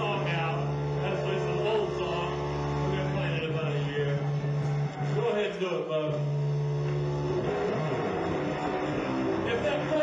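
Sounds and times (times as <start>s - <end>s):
electric guitar through amplifier: 0.0s - 10.0s.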